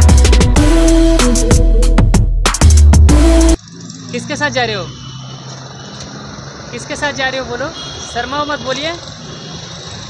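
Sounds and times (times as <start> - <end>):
low hum of street traffic: 3.1 - 10.0.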